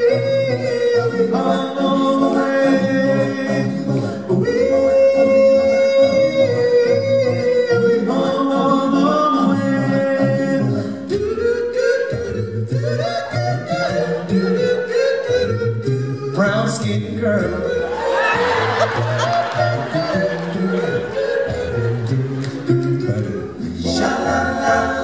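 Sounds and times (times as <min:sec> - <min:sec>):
male a cappella group singing: 0:00.0 - 0:25.0.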